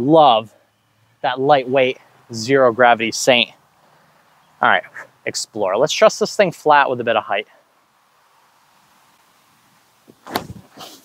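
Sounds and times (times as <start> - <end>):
short hiss: 8.6 - 11.0
disc swishing through air: 10.1 - 11.0.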